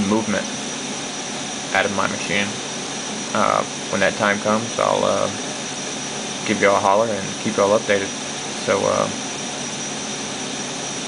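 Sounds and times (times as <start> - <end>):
cooling fans whirring: 0.0 - 11.0
low hum: 0.0 - 11.0.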